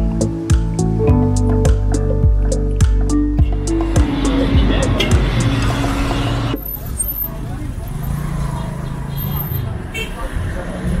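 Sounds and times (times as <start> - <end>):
background music: 0.0 - 6.6.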